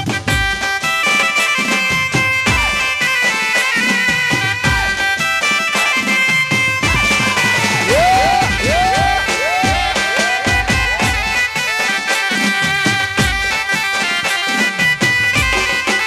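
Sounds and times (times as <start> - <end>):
drum beat: 2.2 - 3.1, 4.3 - 5.2, 5.9 - 16.0.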